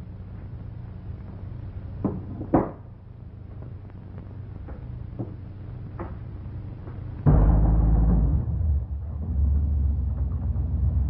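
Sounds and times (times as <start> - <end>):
car engine starting and rumbling: 7.3 - 11.0.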